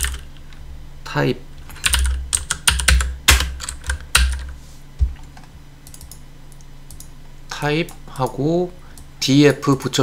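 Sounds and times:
keyboard typing: 0:00.0 - 0:00.3, 0:01.7 - 0:06.2.

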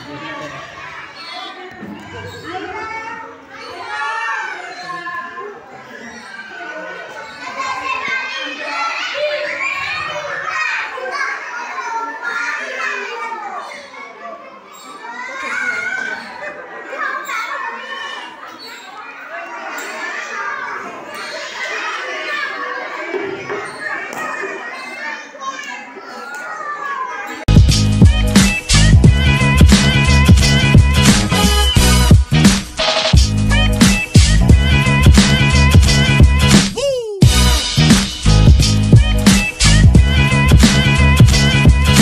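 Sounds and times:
young children talking and calling out: 0:00.0 - 0:32.4, 0:33.3 - 0:42.0.

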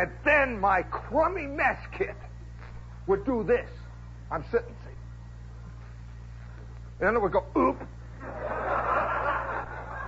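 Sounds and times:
steady low hum: 0:00.0 - 0:10.0
audience laughing: 0:08.2 - 0:10.0.

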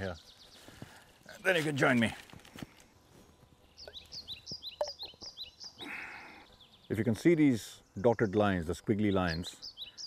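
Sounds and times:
small bird chirping: 0:03.6 - 0:07.1, 0:07.7 - 0:10.0.

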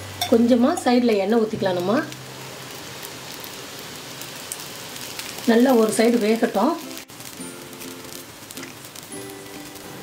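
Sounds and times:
oil sizzling: 0:00.0 - 0:10.0.

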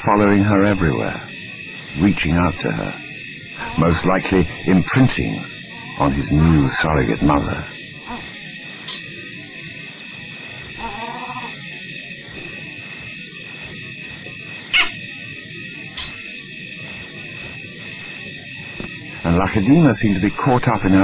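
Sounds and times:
night insects chirring: 0:00.0 - 0:21.0
low animal call: 0:03.6 - 0:06.7, 0:08.0 - 0:09.1, 0:10.7 - 0:11.9, 0:14.7 - 0:15.1.

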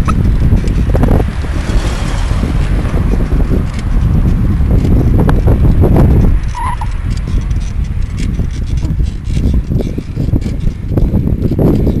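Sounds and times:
bicycle clicking and rattling: 0:00.0 - 0:12.0
wind buffeting microphone: 0:00.0 - 0:12.0.

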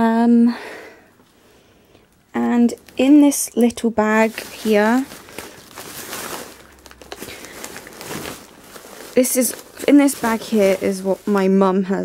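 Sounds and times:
plastic bag rustling and crinkling: 0:02.3 - 0:12.0.

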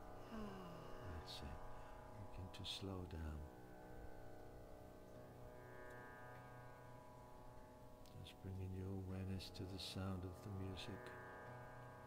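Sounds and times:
faint tanpura drone: 0:00.0 - 0:12.0.

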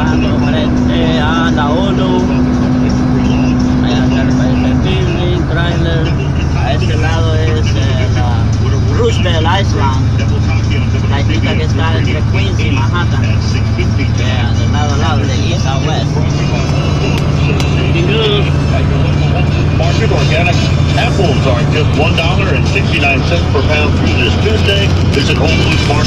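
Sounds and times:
car driving drone: 0:00.0 - 0:26.0
music from car radio: 0:00.0 - 0:26.0
radio announcer speaking: 0:00.0 - 0:26.0.

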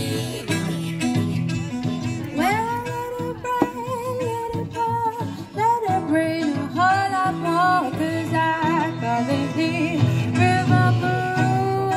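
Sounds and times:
acoustic guitar blues accompaniment: 0:00.0 - 0:11.9
woman singing: 0:02.1 - 0:11.9.

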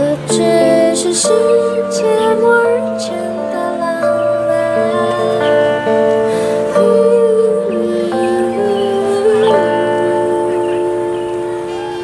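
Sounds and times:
keyboard and guitar chord ringing: 0:00.0 - 0:12.0.

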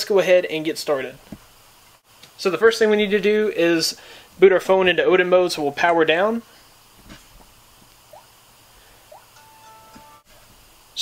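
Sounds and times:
phone chime: 0:09.4 - 0:10.3.

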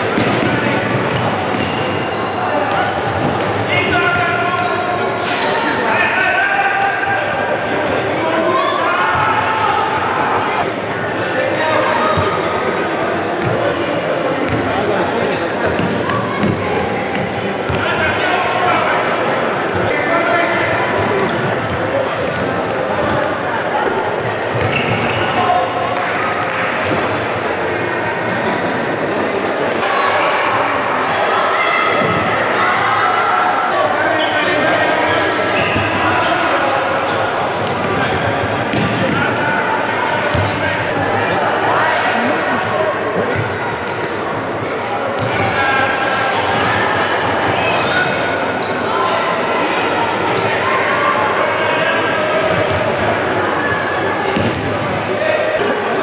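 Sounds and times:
hubbub of voices: 0:00.0 - 0:56.0.

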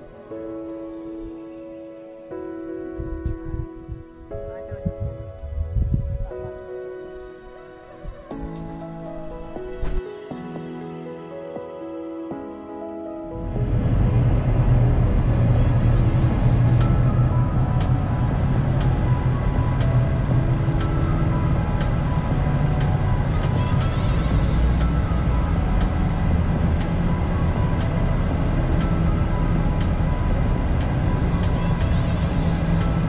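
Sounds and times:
soft background music: 0:00.0 - 0:33.0
car engine and tyres rumbling: 0:13.4 - 0:33.0.

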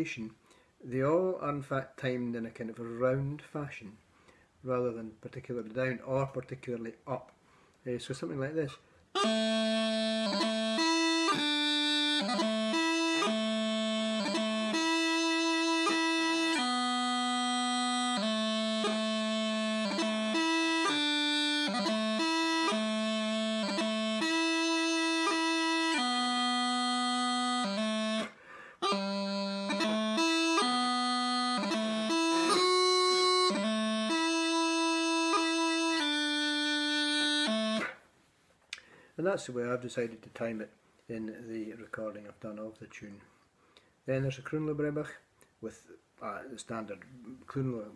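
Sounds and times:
practice chanter melody: 0:09.2 - 0:38.0.

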